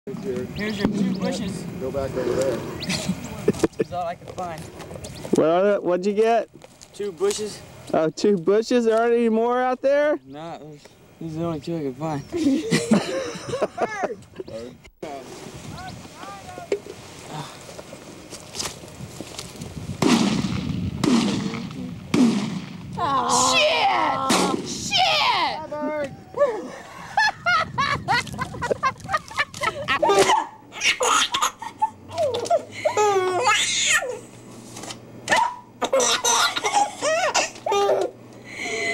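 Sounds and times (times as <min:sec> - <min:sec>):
steady low hum: 0:00.1 - 0:38.9
people talking and laughing: 0:00.2 - 0:04.8, 0:12.1 - 0:16.6, 0:23.0 - 0:33.5
shotgun shots: 0:20.0 - 0:22.8
baby laughing and babbling: 0:30.0 - 0:34.2, 0:35.9 - 0:38.1.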